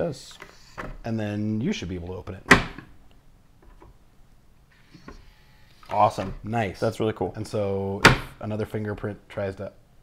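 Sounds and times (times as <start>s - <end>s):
person speaking: 5.8s - 9.8s.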